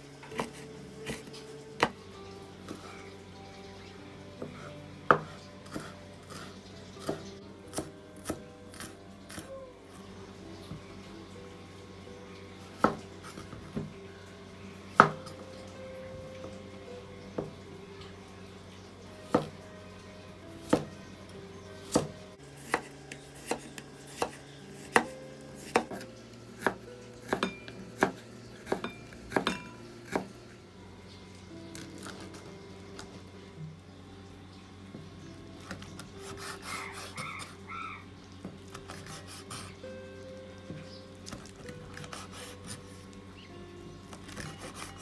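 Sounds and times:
knife chopping on wooden board: 4.4 - 9.5, 21.9 - 26.0, 26.6 - 30.4
knife slicing cucumber on board: 21.9 - 26.0.

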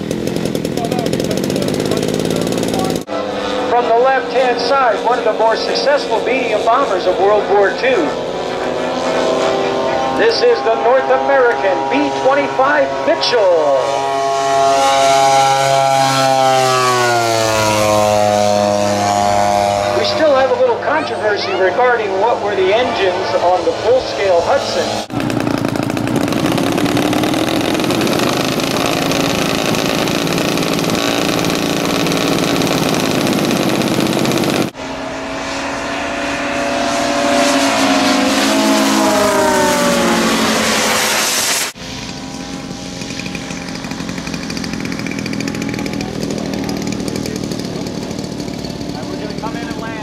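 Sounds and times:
model aircraft engines flying past: 0.0 - 50.0.

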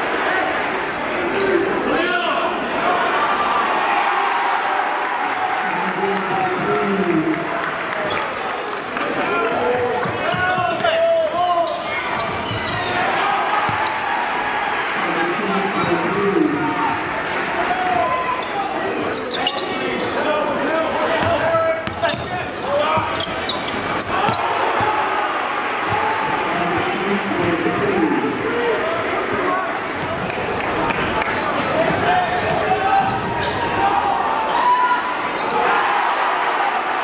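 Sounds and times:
crowd voices and shouting: 0.0 - 37.0
sneakers squeaking: 6.3 - 14.1, 14.7 - 25.2, 25.8 - 30.2, 31.2 - 33.7, 35.3 - 35.7.

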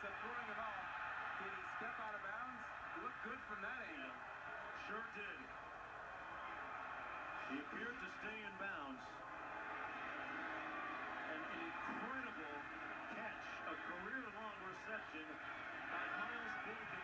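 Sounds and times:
stadium crowd noise on television: 0.0 - 17.0
commentator voices: 11.3 - 17.0.

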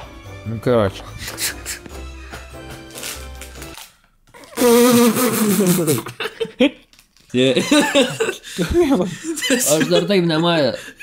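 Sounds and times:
background music: 0.0 - 6.0
man's drawn-out vocal sound: 4.5 - 6.0
man laughing: 4.6 - 6.8, 7.4 - 11.0.

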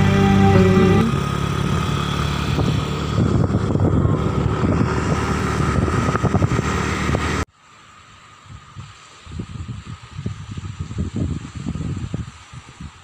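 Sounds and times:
motorcycle engine rumbling: 0.0 - 6.9.

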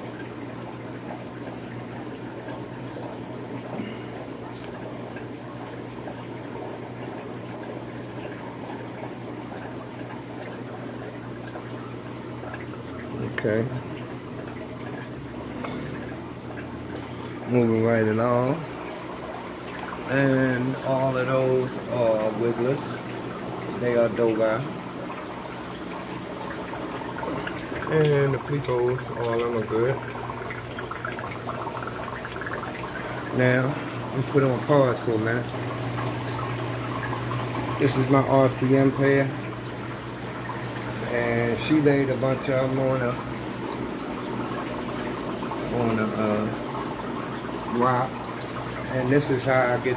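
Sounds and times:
aquarium air pumps humming: 0.0 - 49.9
faint bubbling water: 0.0 - 49.9.

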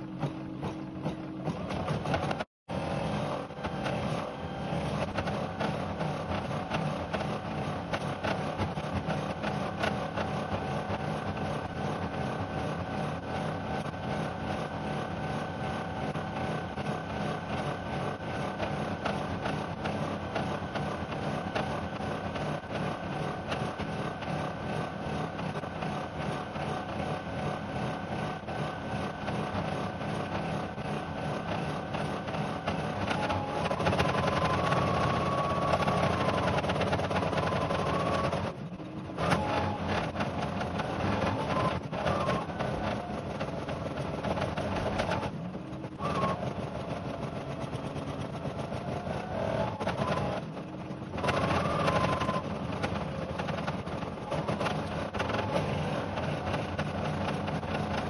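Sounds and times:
motor hum: 0.0 - 58.0.

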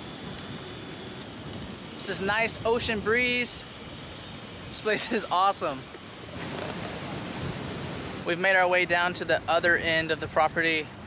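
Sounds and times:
wind blowing on microphone: 0.0 - 11.0.

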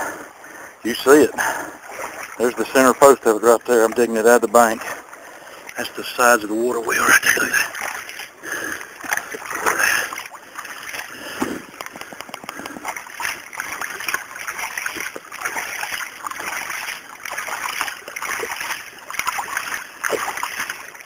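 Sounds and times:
water splashing: 0.0 - 21.0
wet mud scraping: 0.9 - 21.0.

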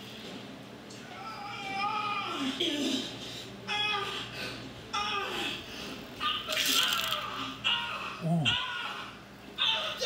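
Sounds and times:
vocal exclamations and laughter: 8.2 - 8.6.

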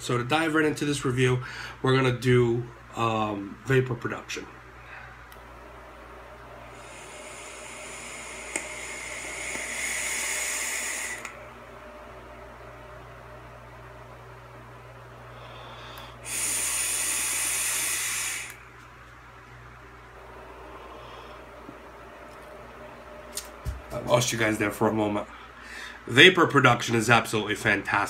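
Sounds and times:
breathy exhaling: 6.7 - 11.4, 15.3 - 18.6
e-cigarette airy hiss: 6.7 - 11.4, 16.2 - 18.6.

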